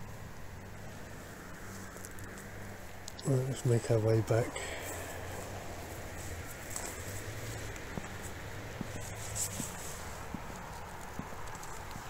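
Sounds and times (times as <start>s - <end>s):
background hiss: 0.0s - 12.0s
footsteps on a paved path: 4.6s - 12.0s.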